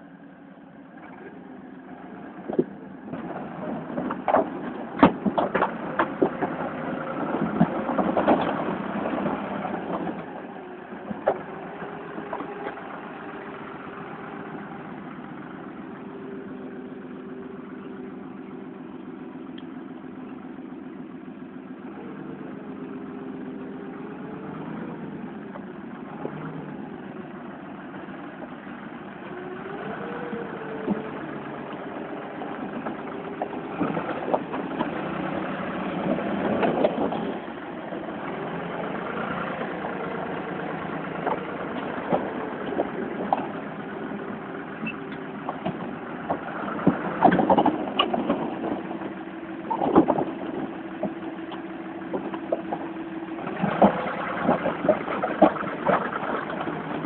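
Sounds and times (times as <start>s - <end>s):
knocks and clatters: 2.5s - 10.3s, 32.6s - 37.5s, 45.1s - 49.0s, 49.7s - 57.0s
engine revving: 29.2s - 49.0s, 53.4s - 57.0s.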